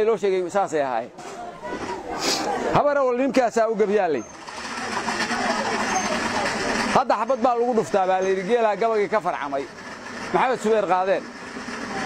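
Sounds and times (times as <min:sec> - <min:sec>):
faint voices: 0:01.1 - 0:10.6.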